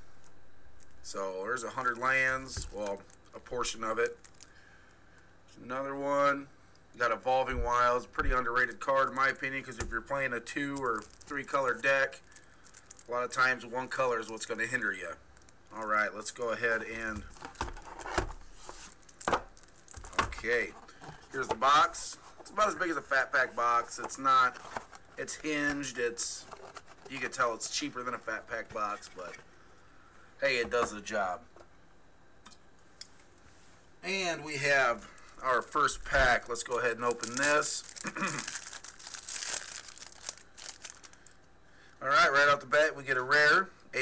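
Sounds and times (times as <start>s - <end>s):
foil wrapper crinkling: 9.0s - 29.4s, 35.0s - 41.5s
person clearing throat: 38.0s - 38.5s.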